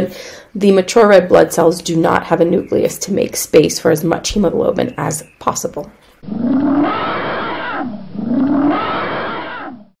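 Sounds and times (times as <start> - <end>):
elephant calling: 6.2 - 10.0.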